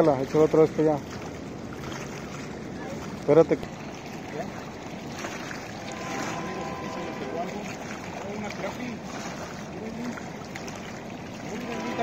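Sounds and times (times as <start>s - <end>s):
choppy water at shoreline: 0.0s - 12.0s.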